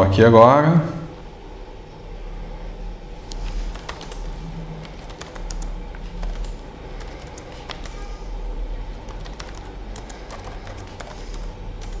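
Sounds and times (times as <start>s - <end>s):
computer keyboard key clicks: 4.8s - 8.0s, 9.1s - 12.0s.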